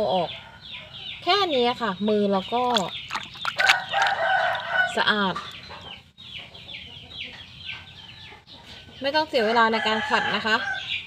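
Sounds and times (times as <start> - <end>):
chickens clucking and peeping: 0.0 - 2.0, 2.6 - 11.0
rooster crowing: 3.6 - 5.2.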